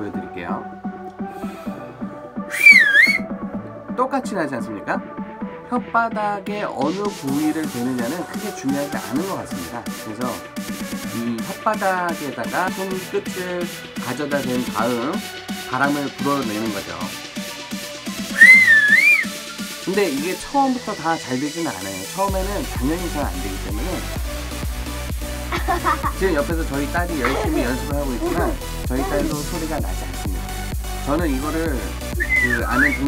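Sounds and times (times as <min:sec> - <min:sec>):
background music with steady beat: 0:00.0 - 0:33.0
loud finger whistle: 0:02.5 - 0:03.4, 0:18.3 - 0:19.6, 0:31.6 - 0:33.0.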